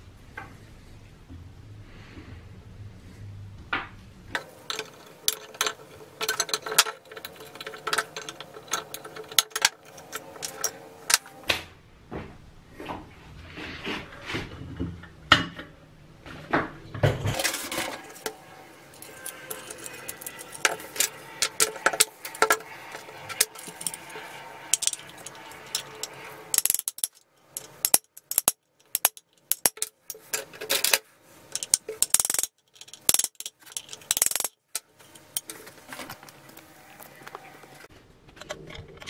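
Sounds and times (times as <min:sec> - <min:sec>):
metal clicks and scrapes: 0:04.3 - 0:11.4, 0:17.3 - 0:37.4, 0:38.3 - 0:39.0.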